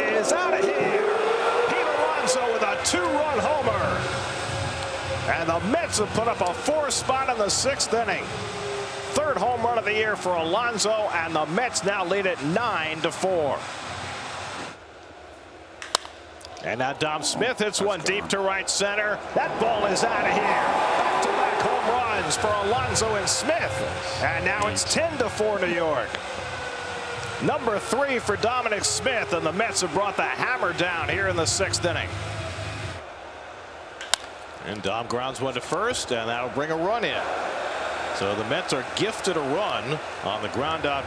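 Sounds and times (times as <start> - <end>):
stadium ambience hiss: 0.0 - 41.0
crowd-like hiss: 3.2 - 14.8
baseball bat hitting ball: 15.8 - 16.2, 34.0 - 34.5.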